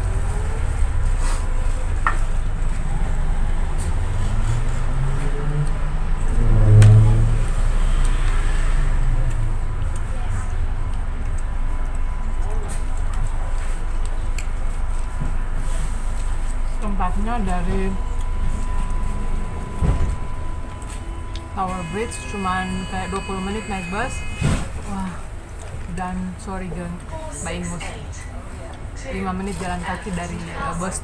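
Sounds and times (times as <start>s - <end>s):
short low hum: 0.0s - 25.8s
bus engine rumble from inside: 0.0s - 31.0s.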